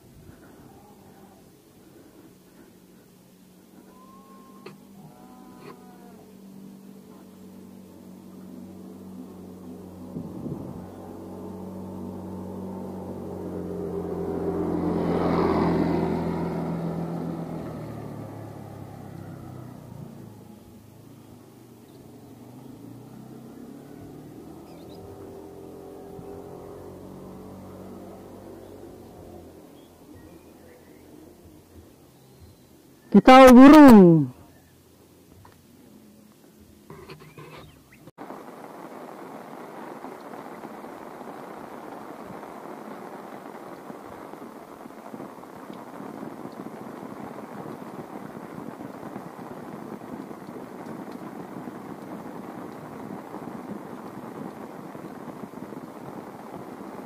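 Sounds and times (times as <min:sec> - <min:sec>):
small motorcycle engine passing: 0:00.0 - 0:32.6
faint engine: 0:00.0 - 0:38.4.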